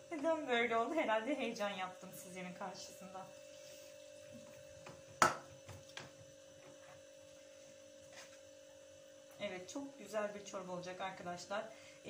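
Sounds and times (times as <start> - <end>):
steady electrical hum: 0.0 - 12.0.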